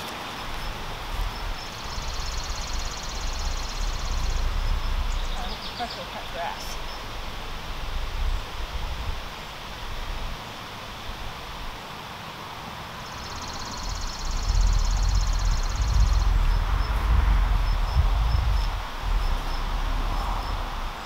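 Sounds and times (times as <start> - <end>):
wind rumble on microphone: 0.0 - 10.4, 13.3 - 21.0
insect pulsing trill: 0.6 - 5.3, 13.0 - 21.0.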